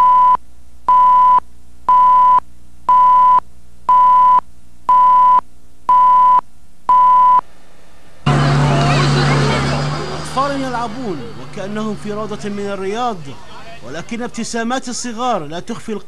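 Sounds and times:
single-pitched countdown beeps: 0.0 - 7.4
low hum: 0.0 - 16.0.

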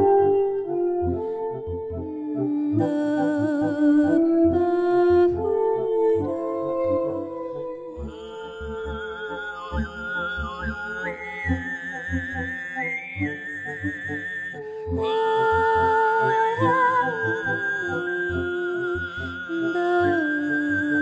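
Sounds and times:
reed wind instrument: 0.0 - 21.0.

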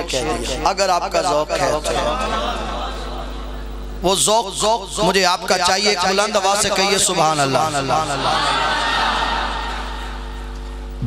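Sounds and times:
steady electrical hum: 0.0 - 11.0
audience calling out together: 8.1 - 10.3.

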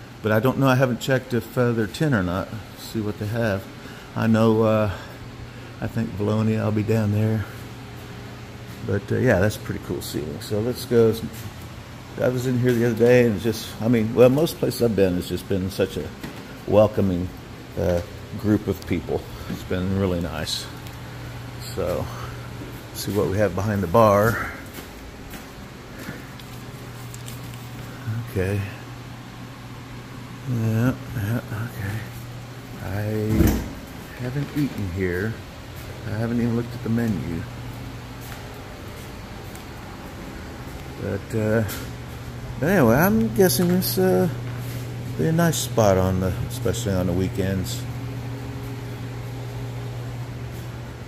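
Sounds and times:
low steady hum: 0.0 - 51.0
room background noise: 0.0 - 51.0.

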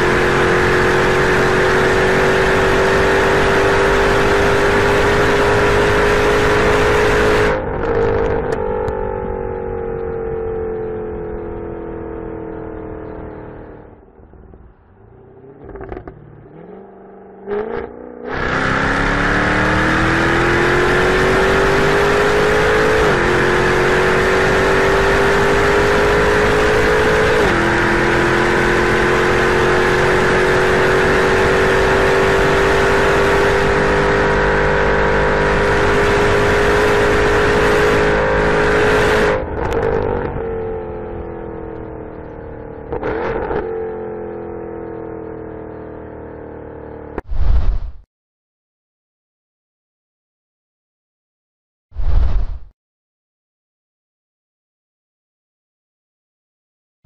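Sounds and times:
car engine accelerating hard: 0.0 - 47.2.

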